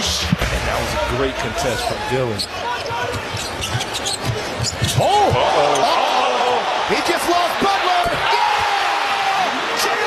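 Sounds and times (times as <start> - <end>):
short high squeaks: 3.2 - 5.0.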